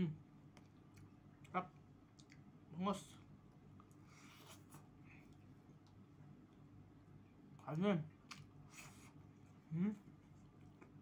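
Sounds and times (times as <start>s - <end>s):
chewing with soft mouth noises: 0.3s - 11.0s.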